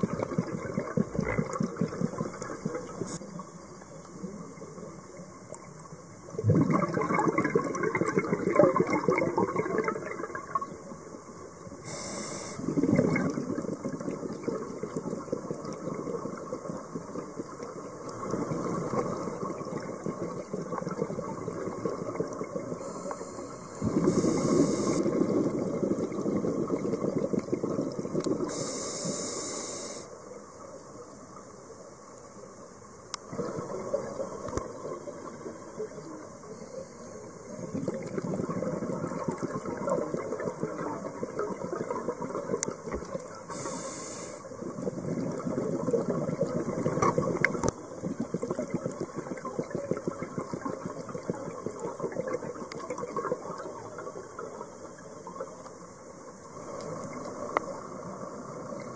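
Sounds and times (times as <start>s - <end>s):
exhaled bubbles crackling: 0.0s - 29.5s, 33.1s - 36.4s, 37.3s - 55.8s, 56.4s - 58.9s
regulator inhalation hiss: 11.8s - 12.7s, 22.8s - 25.4s, 28.4s - 30.2s, 43.5s - 44.6s.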